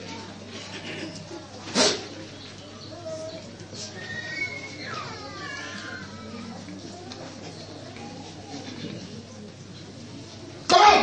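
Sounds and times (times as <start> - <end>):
background murmur: 0.0 - 11.0.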